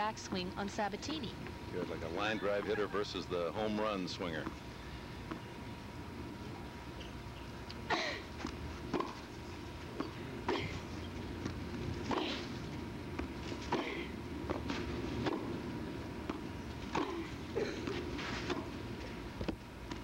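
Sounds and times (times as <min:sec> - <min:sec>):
tennis ball hit by rackets: 0:08.9 - 0:09.2, 0:14.5 - 0:15.5.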